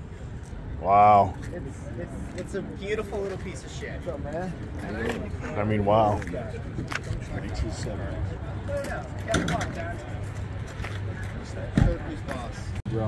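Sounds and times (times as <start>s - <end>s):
people talking indistinctly: 0.7s - 13.0s.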